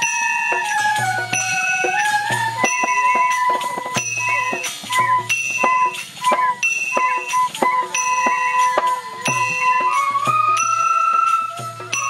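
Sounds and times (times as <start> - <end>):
bamboo flutes playing in unison: 0.0 - 12.0
percussion strikes: 0.0 - 12.0.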